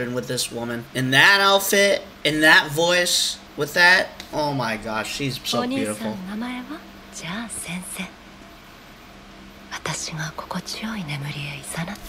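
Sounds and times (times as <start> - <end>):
woman whispering softly: 9.7 - 12.0.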